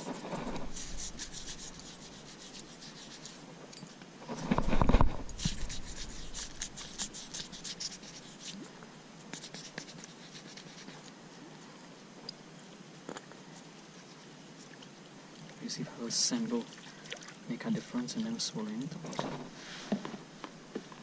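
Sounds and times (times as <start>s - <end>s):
hands rubbing and scratching: 0.0s - 3.4s, 5.3s - 8.7s, 9.3s - 11.1s.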